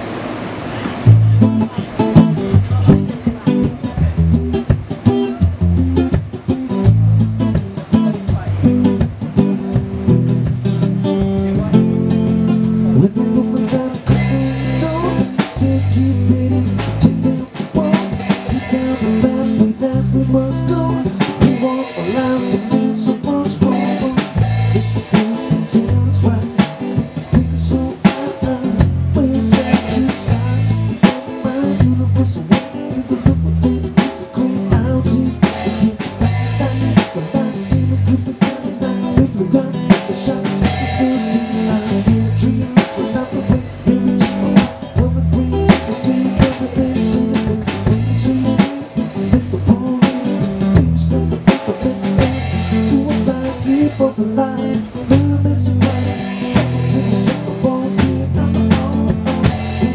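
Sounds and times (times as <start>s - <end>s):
electric guitar: 0.0s - 59.9s
low bass notes: 0.9s - 59.9s
drum beat: 1.1s - 59.9s.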